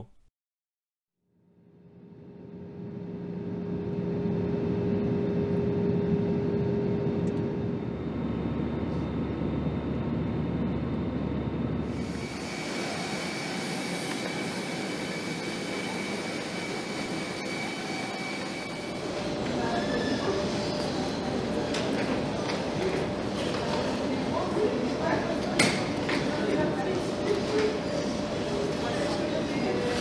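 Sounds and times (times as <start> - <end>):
jet airliner cabin drone: 1.8 - 30.0
high whines of jet machinery: 2.5 - 30.0.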